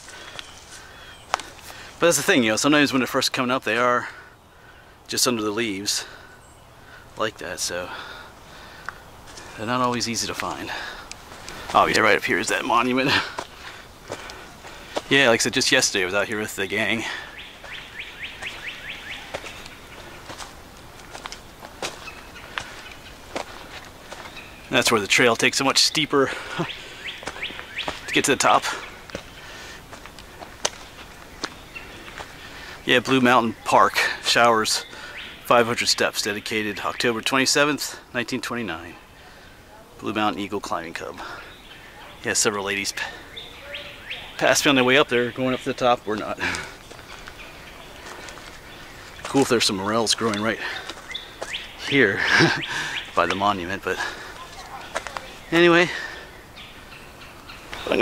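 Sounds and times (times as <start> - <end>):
footsteps crunching on leaves: 0.0 - 1.9, 9.1 - 15.2, 17.0 - 24.7, 26.4 - 32.8, 46.2 - 53.4, 54.0 - 56.1
faint bird chirps: 14.8 - 20.6, 41.4 - 58.0.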